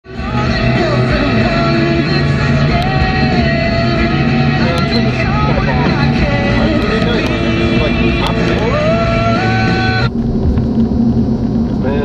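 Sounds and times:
rock song playing: 0.1s - 10.1s.

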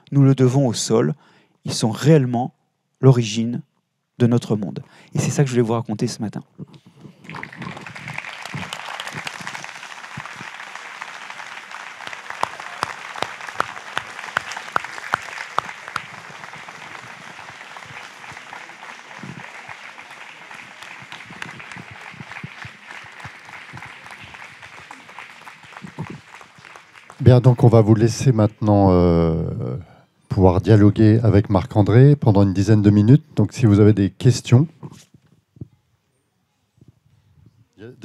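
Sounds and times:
audience applauding: 7.0s - 28.5s.

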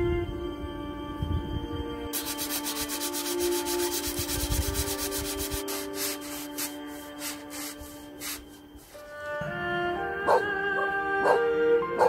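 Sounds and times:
sandpaper rubbing on wood: 2.2s - 9.1s.

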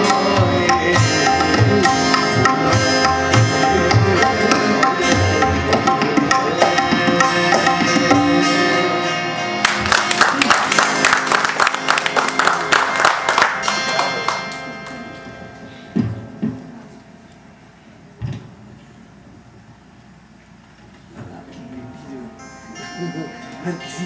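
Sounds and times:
tabla: 0.0s - 9.0s
harmonium: 0.0s - 10.3s
plucked strings: 0.0s - 17.0s.

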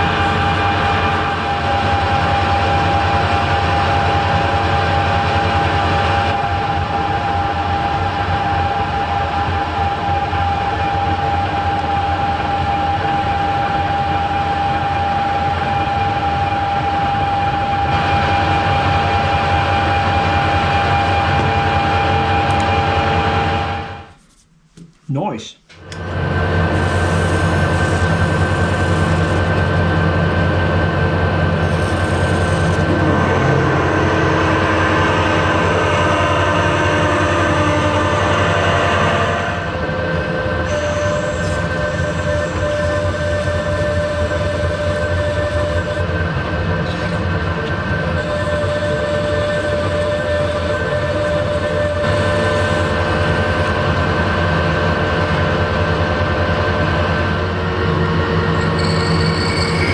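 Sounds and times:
metal lathe whine and hum: 0.0s - 24.1s, 25.8s - 59.9s
drill boring into metal: 26.7s - 30.6s, 31.4s - 33.9s
steady tone: 27.2s - 44.0s.

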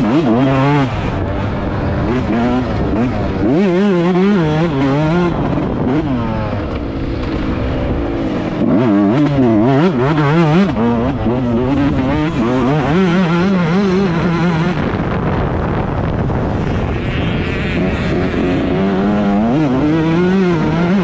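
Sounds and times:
motocross engine revving: 0.0s - 21.0s.

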